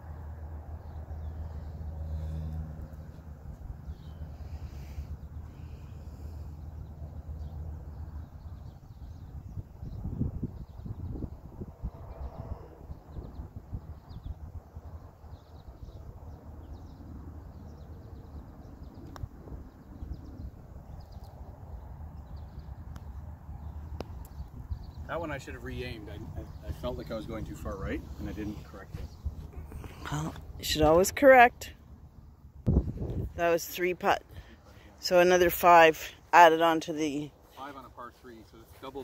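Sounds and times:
wind rumbling on microphone: 0:00.8 - 0:34.6.

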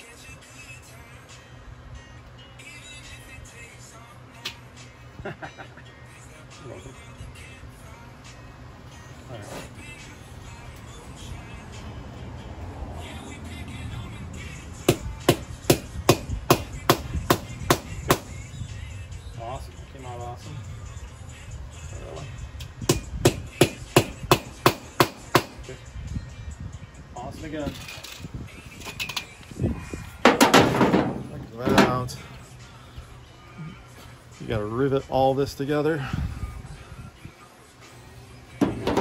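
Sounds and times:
hammer striking metal: 0:14.9 - 0:18.3, 0:22.9 - 0:25.6.

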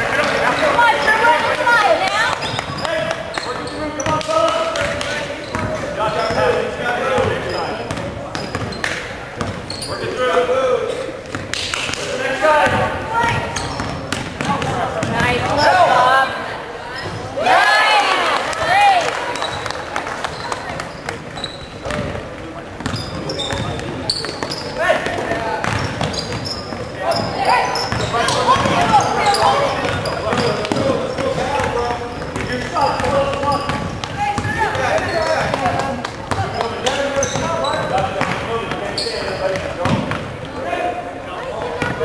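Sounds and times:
spectators shouting: 0:17.3 - 0:19.4.

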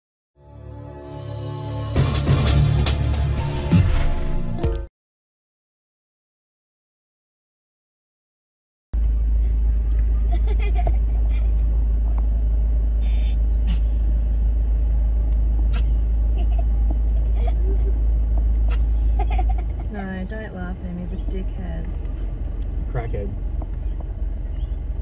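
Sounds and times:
car engine and cabin rumble: 0:09.0 - 0:25.0.

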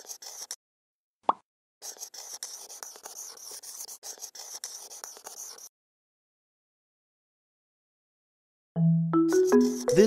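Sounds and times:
marker scratching on paper: 0:00.0 - 0:00.6, 0:01.8 - 0:05.7, 0:09.3 - 0:10.0.

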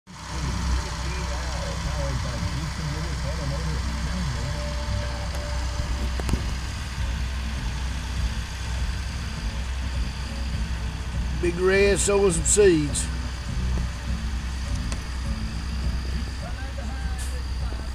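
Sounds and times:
tractor diesel engine droning: 0:00.1 - 0:17.9.

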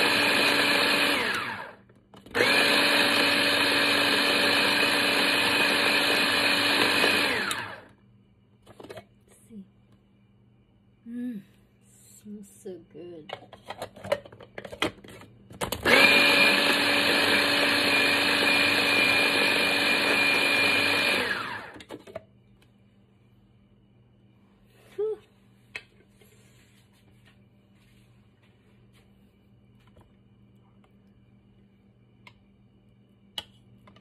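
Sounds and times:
electric food chopper motor: 0:00.0 - 0:08.0, 0:15.6 - 0:22.0.

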